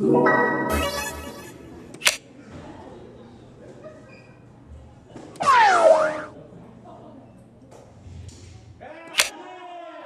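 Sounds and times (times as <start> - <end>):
low hall background noise: 0.0 - 10.0.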